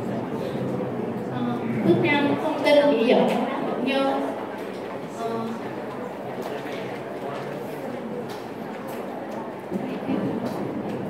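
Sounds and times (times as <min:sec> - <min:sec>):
chatter of many voices: 0:00.0 - 0:11.0.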